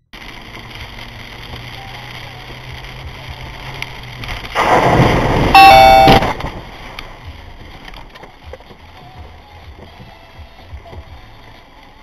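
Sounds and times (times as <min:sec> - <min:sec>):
rain and tyres on wet road: 0:00.0 - 0:12.0
loud blaring tone: 0:05.5 - 0:06.4.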